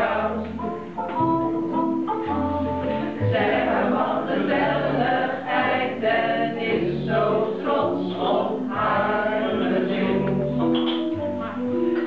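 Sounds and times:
group of people singing: 0.0 - 1.0, 2.2 - 11.2.

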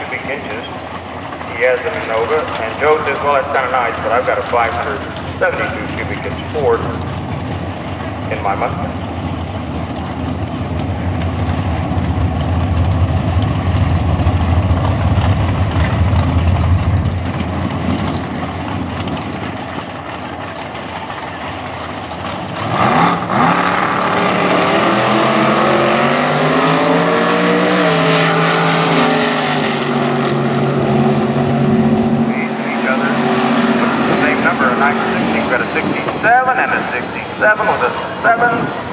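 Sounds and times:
drag car engines rumbling and revving: 0.0 - 38.9.

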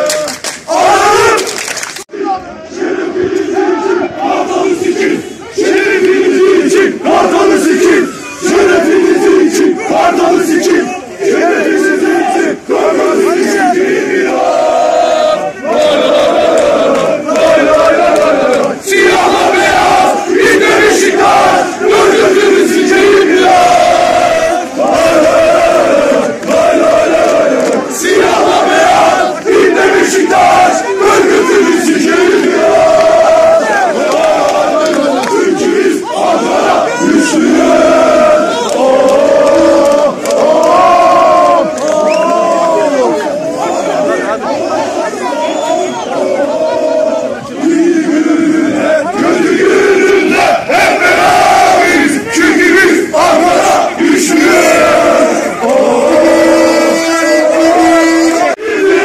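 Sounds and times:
crowd chanting in unison: 0.7 - 59.0.

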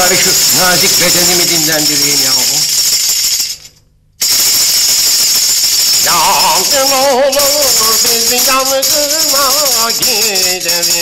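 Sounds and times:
rapid rattling and clattering: 0.0 - 11.0.

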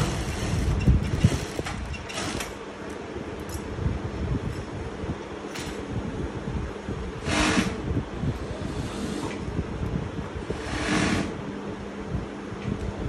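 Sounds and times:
sewing room hum and rumble: 0.0 - 13.0.

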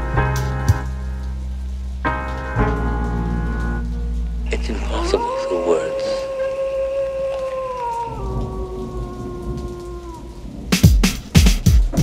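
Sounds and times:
rain: 0.0 - 12.0
thunder rumble: 0.0 - 12.0.

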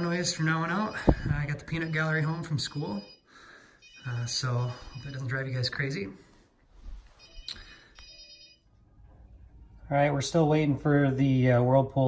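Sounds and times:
faint electronic ringing tones: 0.0 - 6.2, 7.1 - 9.8.

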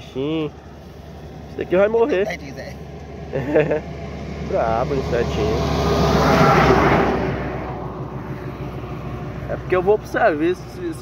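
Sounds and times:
low engine hum: 0.0 - 11.0
passing vehicle road noise: 0.0 - 11.0.

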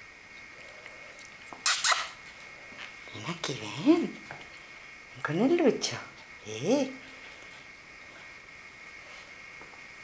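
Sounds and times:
cat hissing: 1.5 - 2.2.

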